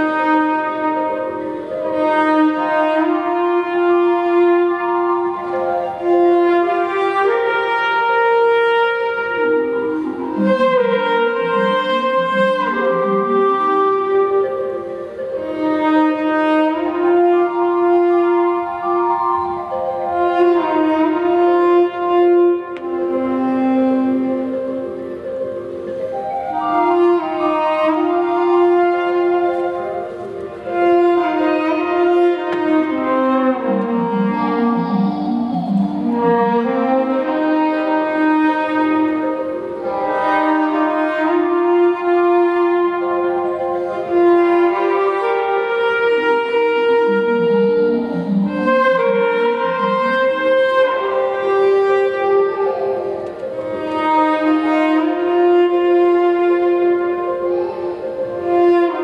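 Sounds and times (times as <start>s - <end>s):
jazz orchestra playing slow chords: 0.0s - 59.0s.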